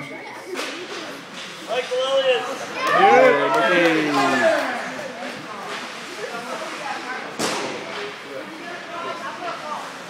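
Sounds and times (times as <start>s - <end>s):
indistinct chatter: 0.0s - 10.0s
sharp smack: 7.4s - 7.8s.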